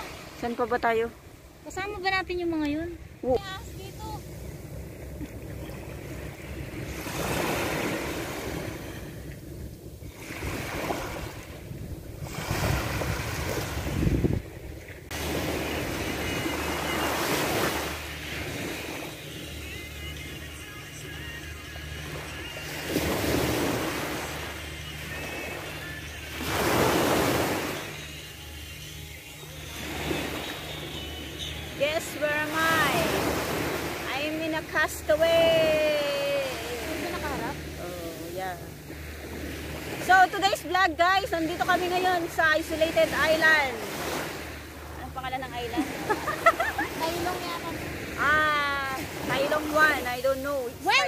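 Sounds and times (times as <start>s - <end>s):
waves washing up beach: 0.0s - 51.0s
low musical bed: 15.1s - 33.1s.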